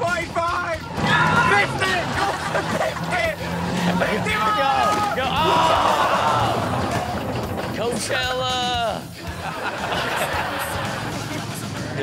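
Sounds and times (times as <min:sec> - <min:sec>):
people shouting: 0:00.0 - 0:07.7
vehicle engine running: 0:00.0 - 0:09.3.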